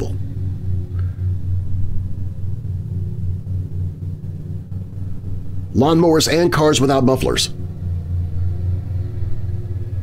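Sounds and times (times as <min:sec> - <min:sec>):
muffled engine drone: 0:00.0 - 0:10.0.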